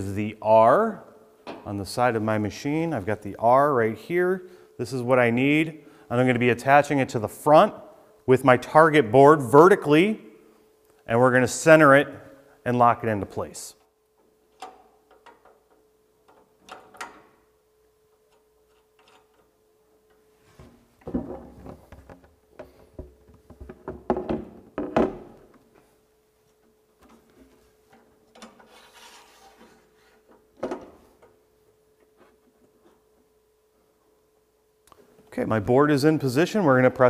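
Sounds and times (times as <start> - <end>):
faint steady hum: 0.0 - 37.0
board clunking and knocking: 21.0 - 25.4
board scraping on metal: 28.6 - 30.2.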